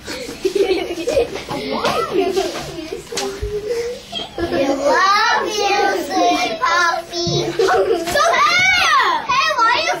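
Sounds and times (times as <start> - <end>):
young children talking: 0.0 - 10.0.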